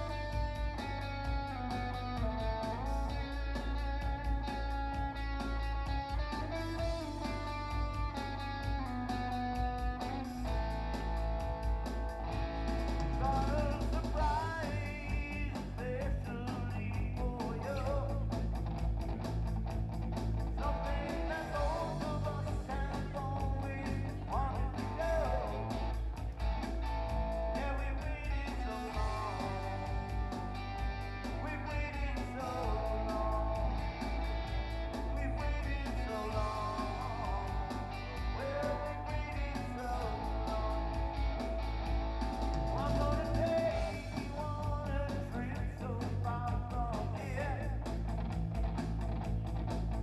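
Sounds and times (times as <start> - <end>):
live rock band playing: 0.0 - 50.0.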